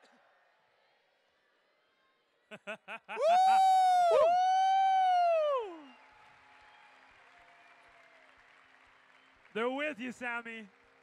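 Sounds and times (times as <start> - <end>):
man whooping into a microphone: 3.1 - 6.0.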